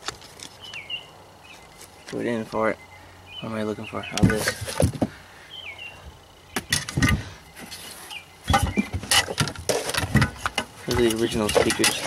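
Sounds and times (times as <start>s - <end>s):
faint bird chirps: 0.6s - 4.4s, 5.3s - 9.0s
parts and packaging knocking and rustling: 4.1s - 5.2s, 6.6s - 12.0s.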